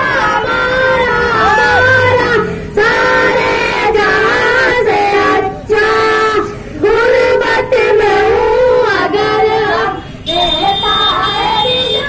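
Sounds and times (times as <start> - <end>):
children singing into microphones: 0.0 - 11.7.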